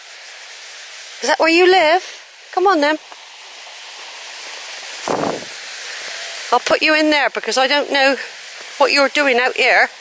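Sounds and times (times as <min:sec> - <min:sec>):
waterfall rushing: 0:02.8 - 0:10.0.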